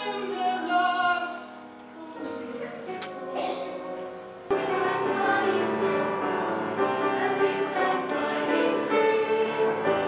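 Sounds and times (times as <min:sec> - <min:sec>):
choir singing: 0:00.0 - 0:10.0
quiet singing: 0:00.0 - 0:10.0.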